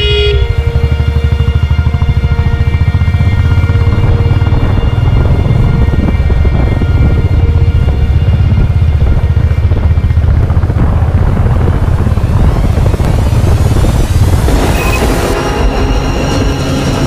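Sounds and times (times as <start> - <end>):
background music: 0.0 - 10.8, 11.9 - 17.0
motorcycle engine rumbling: 0.0 - 17.0
wind buffeting microphone: 0.6 - 17.0.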